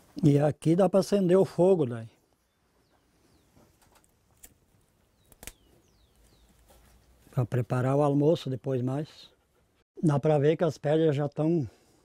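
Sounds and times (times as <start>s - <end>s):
bird chirps: 2.4s - 3.7s, 5.0s - 7.0s.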